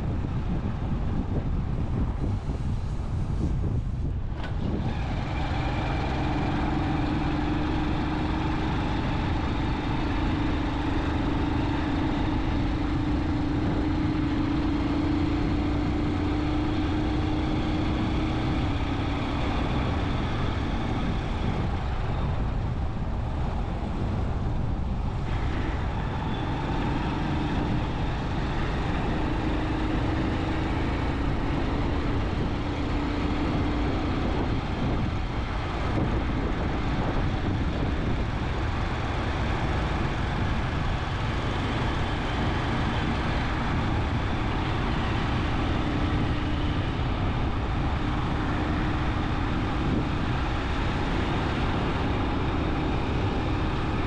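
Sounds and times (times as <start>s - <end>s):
low engine hum: 0.0s - 54.0s
road and wind noise: 0.0s - 54.0s.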